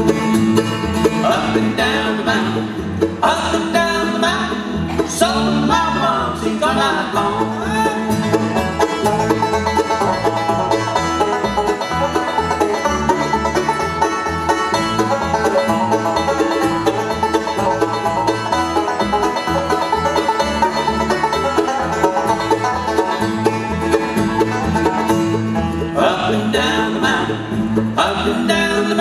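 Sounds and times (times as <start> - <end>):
banjo picking: 0.0 - 29.0
bluegrass band playing: 0.0 - 29.0.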